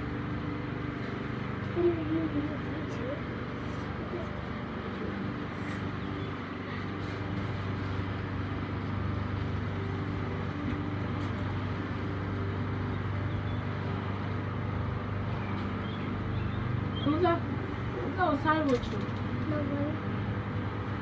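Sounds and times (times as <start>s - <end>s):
street noise: 0.0s - 21.0s
vehicle engine idling: 0.0s - 21.0s.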